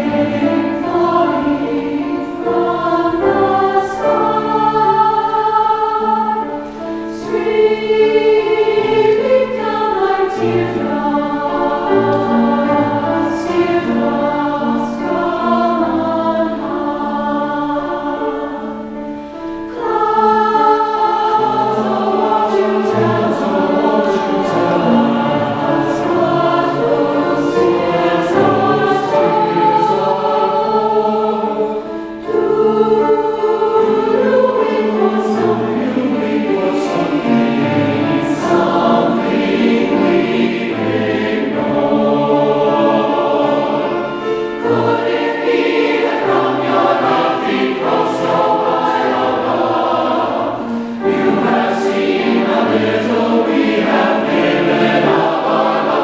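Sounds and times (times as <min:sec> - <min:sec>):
mixed choir singing: 0:00.0 - 0:56.0.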